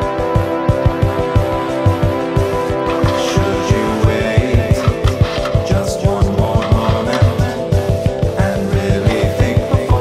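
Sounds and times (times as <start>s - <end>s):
fast steady drum beat: 2.6s - 10.0s.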